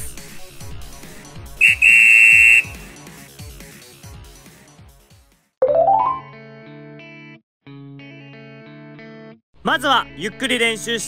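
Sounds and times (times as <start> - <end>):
background music: 0.0 - 7.0
whistle blast: 1.6 - 2.9.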